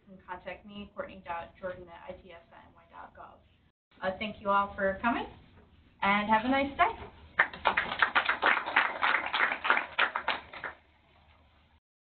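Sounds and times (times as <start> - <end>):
audience applauding: 7.4 - 10.8.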